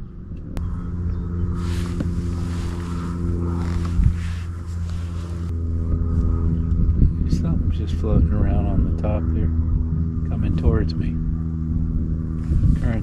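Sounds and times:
electric motor humming: 0:00.6 - 0:07.6, 0:09.1 - 0:13.0
soft rushing hiss: 0:01.5 - 0:05.5.

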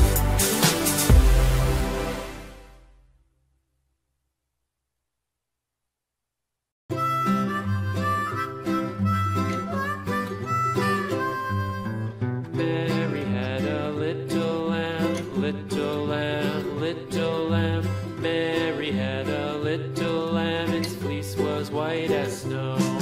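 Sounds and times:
melody over steady bass: 0:00.0 - 0:03.1.

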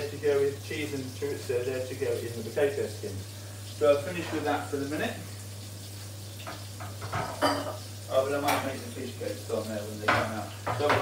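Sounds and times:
fish sizzling in a pan: 0:00.0 - 0:11.0.

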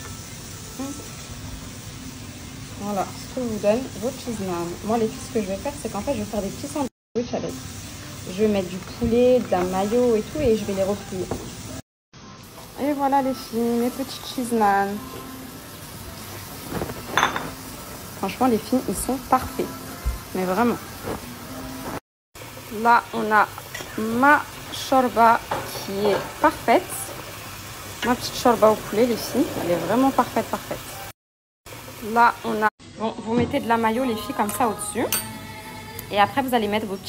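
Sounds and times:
ceramic plate clinking: 0:17.1 - 0:17.6.

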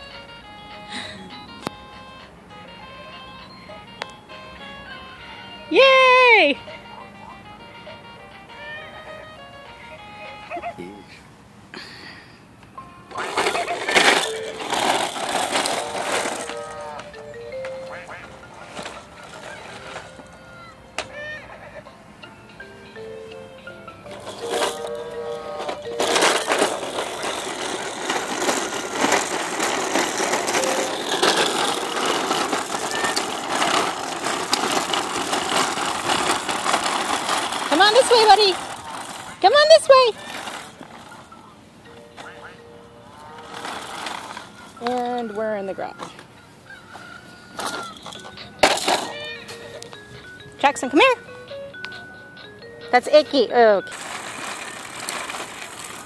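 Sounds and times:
plastic toy clatter on asphalt: 0:13.1 - 0:21.3, 0:24.0 - 0:42.4, 0:43.2 - 0:51.1, 0:53.0 - 0:56.0
plastic wheels rattling on concrete: 0:13.1 - 0:22.0, 0:23.9 - 0:56.0.

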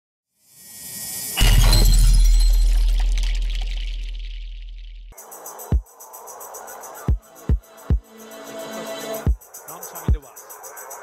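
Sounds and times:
glassy high ring: 0:00.5 - 0:04.1
crash with deep boom: 0:01.4 - 0:05.1.

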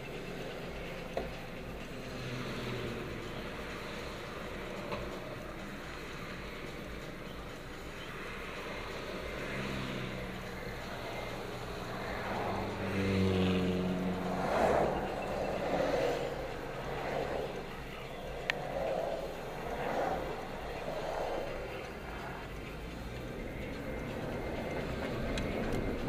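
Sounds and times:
car engine: 0:00.0 - 0:26.0
road and tyre noise: 0:00.0 - 0:26.0.

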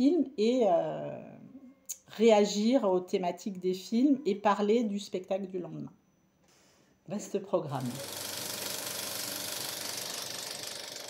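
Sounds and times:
film projector clattering: 0:07.8 - 0:11.0.

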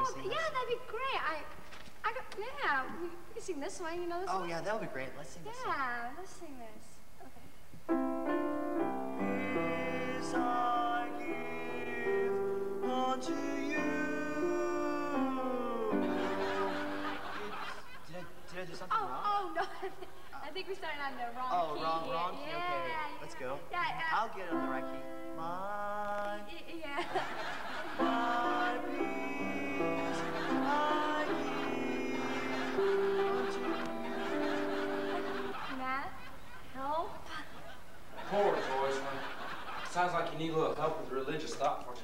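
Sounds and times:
keyboard accompaniment: 0:07.9 - 0:17.8, 0:27.4 - 0:35.7
people singing a hymn: 0:09.0 - 0:17.6, 0:27.1 - 0:35.6.

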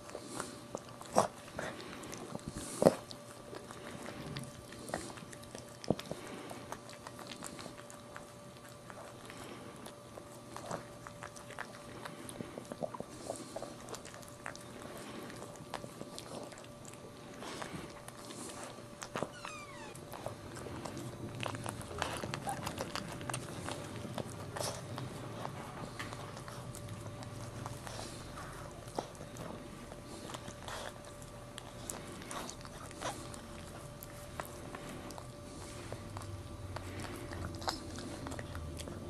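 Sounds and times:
dog licking puppy: 0:00.0 - 0:39.0
puppy squealing: 0:19.2 - 0:20.1.

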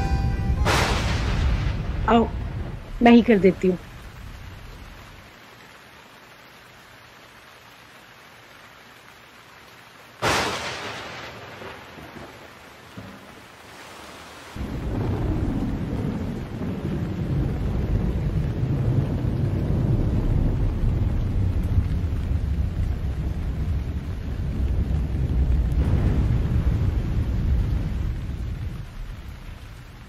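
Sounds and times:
sharp thunderclap: 0:00.0 - 0:05.2, 0:10.2 - 0:13.3, 0:14.6 - 0:30.0
deep thunder rumble: 0:00.0 - 0:05.3, 0:14.6 - 0:30.0
rain: 0:00.0 - 0:30.0.

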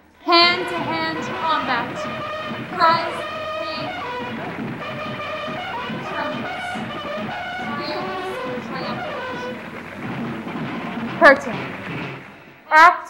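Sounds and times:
low din: 0:00.0 - 0:12.4.

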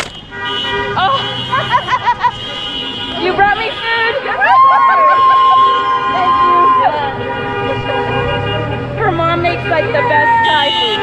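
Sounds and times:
car horns honking: 0:00.0 - 0:11.0
cars rolling past: 0:00.0 - 0:11.0
people calling out: 0:02.4 - 0:08.3, 0:09.0 - 0:11.0.

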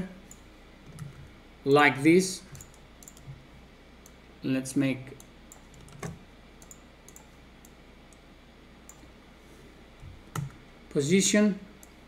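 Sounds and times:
faint low hum: 0:00.0 - 0:12.0
computer mouse and keyboard clicks: 0:00.2 - 0:01.3, 0:02.5 - 0:03.4, 0:05.2 - 0:08.2, 0:10.0 - 0:10.6.

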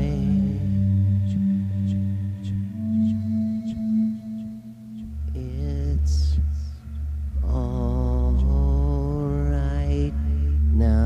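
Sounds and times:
steady low drone: 0:00.0 - 0:11.0
voice chanting held notes: 0:00.0 - 0:11.0.

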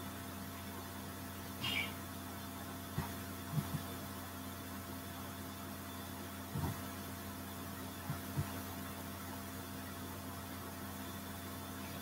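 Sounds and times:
low electrical hum with hiss: 0:00.0 - 0:12.0.

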